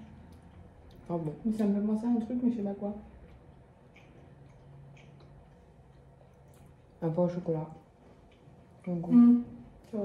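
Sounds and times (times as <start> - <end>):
faint low room hum: 0.0 - 10.0
mouth clicks chewing food: 3.2 - 7.0.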